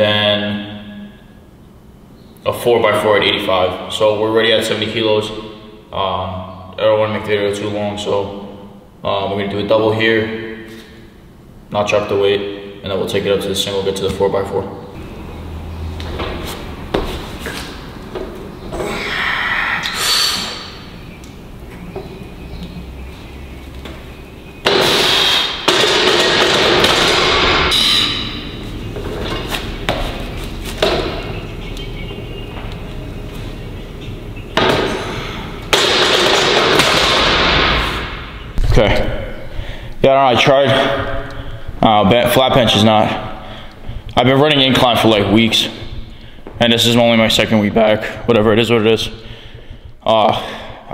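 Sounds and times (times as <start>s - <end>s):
loud rushing breath-like noise: 18.8s - 20.9s
sharp metal knocks: 24.6s - 28.4s.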